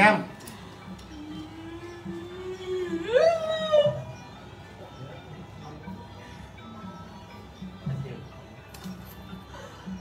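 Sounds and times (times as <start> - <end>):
woman wailing: 1.1 - 4.2.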